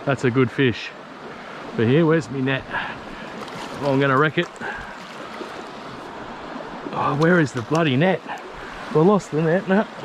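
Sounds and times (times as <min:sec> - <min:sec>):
creek water rippling over stones: 0:00.9 - 0:10.0.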